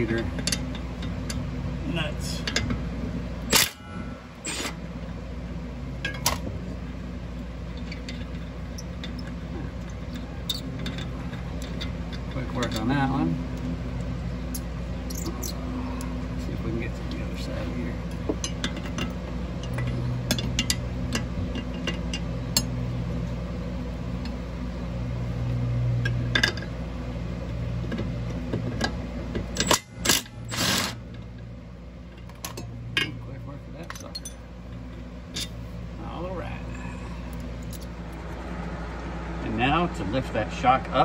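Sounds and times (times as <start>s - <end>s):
steady low hum: 0.0s - 41.0s
metal tools clinking: 32.1s - 35.6s.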